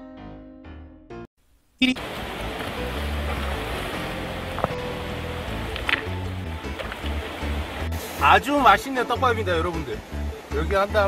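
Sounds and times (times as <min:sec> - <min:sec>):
stream rushing over rocks: 0:02.0 - 0:11.0
rocks knocking in water: 0:02.1 - 0:07.7.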